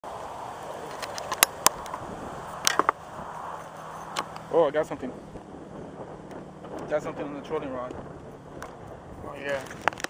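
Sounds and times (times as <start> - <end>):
sharp clicks and knocks: 9.6 - 10.0.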